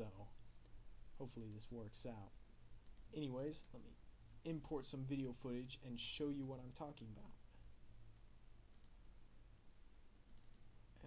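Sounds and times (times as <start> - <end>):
low room hum: 0.0 - 11.0
computer mouse clicks: 2.8 - 3.8, 8.7 - 9.0, 10.2 - 10.7.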